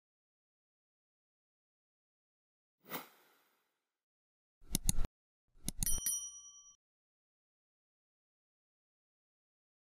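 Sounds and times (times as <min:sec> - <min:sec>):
bright bell ding: 0:05.8 - 0:06.8.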